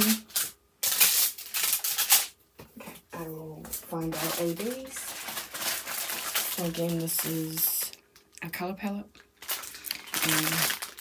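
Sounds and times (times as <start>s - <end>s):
plastic film crinkling: 0.0s - 2.4s, 3.2s - 8.5s, 9.1s - 11.0s.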